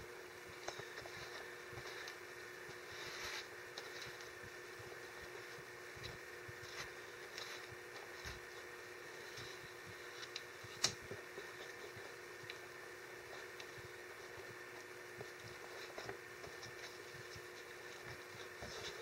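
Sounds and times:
steady low hum: 0:00.0 - 0:19.0
paper rustling: 0:00.6 - 0:04.4, 0:05.2 - 0:12.6, 0:15.2 - 0:19.0.

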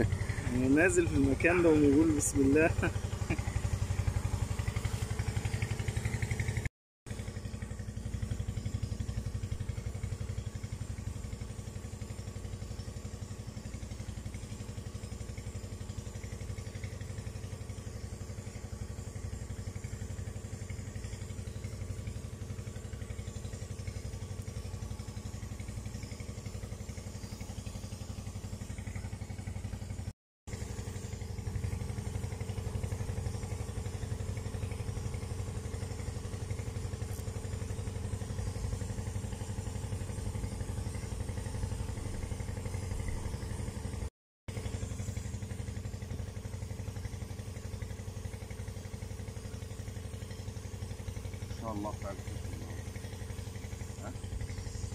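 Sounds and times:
motor humming: 0:00.0 - 0:44.0, 0:44.6 - 0:54.9.

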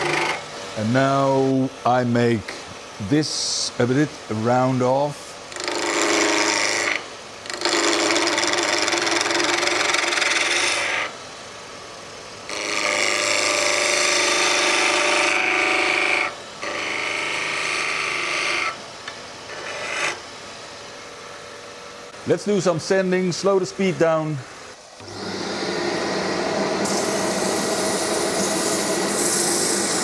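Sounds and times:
lathe humming: 0:00.0 - 0:02.1, 0:03.3 - 0:11.2, 0:12.5 - 0:20.2, 0:22.0 - 0:30.0
lathe tool scraping wood: 0:05.5 - 0:11.1, 0:12.5 - 0:18.7, 0:19.5 - 0:20.2, 0:25.0 - 0:30.0.

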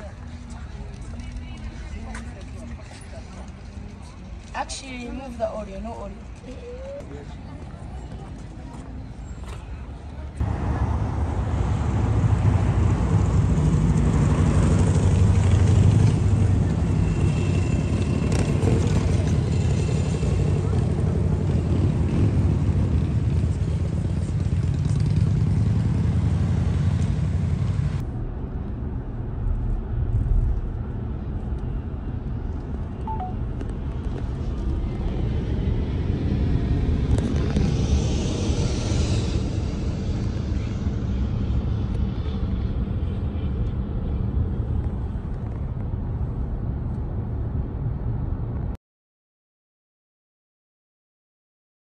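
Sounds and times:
road noise inside moving car: 0:00.0 - 0:48.7
cars moving and idling: 0:00.0 - 0:48.8.

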